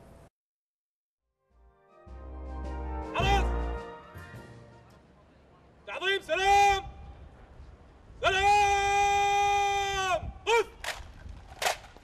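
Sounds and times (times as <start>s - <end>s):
person shouting a command: 3.1s - 3.6s, 5.9s - 7.0s, 8.2s - 10.8s.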